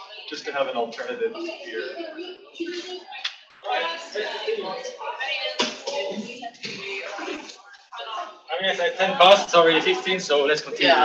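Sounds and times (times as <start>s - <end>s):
indistinct talking: 0.0s - 11.0s.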